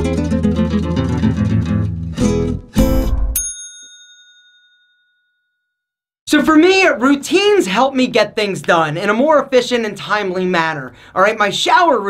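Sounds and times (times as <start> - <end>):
bright bell ding: 2.8 - 5.7.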